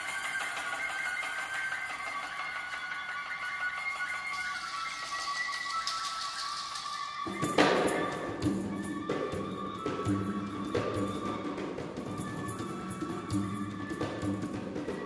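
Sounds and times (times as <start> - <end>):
wind instruments holding notes: 0.0 - 15.0.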